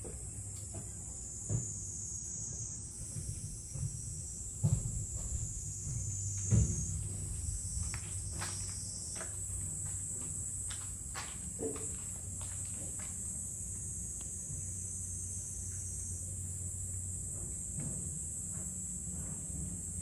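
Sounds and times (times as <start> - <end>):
insects buzzing: 0.0 - 20.0
low background rumble: 2.5 - 14.9
dull thumps: 3.0 - 9.9.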